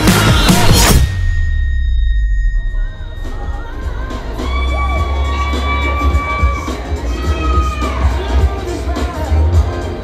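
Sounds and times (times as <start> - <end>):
music with heavy bass: 0.0 - 10.0
audience cheering in a hall: 2.8 - 9.4.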